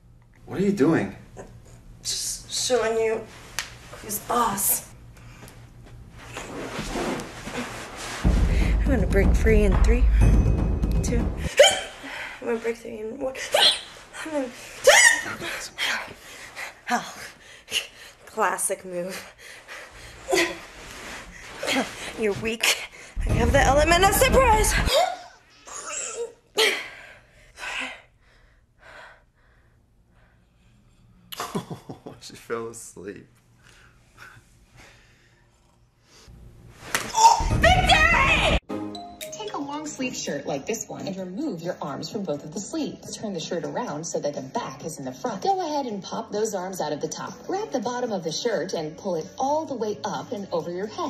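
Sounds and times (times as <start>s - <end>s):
woman grunting and crying out: 24.7s - 26.8s, 37.1s - 38.6s.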